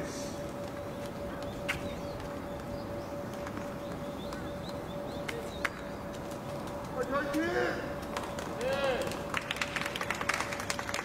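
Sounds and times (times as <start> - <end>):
birds chirping: 0.0 - 11.0
steady hum: 0.0 - 11.0.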